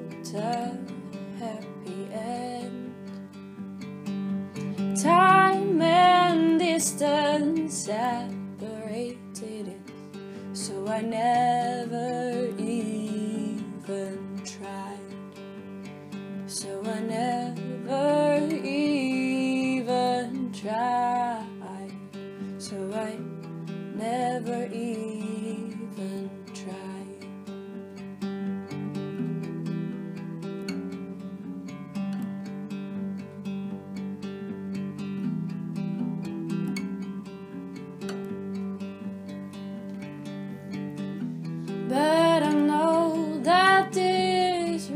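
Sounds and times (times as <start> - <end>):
person singing: 0.0 - 3.2, 4.6 - 15.3, 16.5 - 22.0, 22.6 - 27.3, 41.9 - 44.9
acoustic guitar strumming: 0.0 - 44.9.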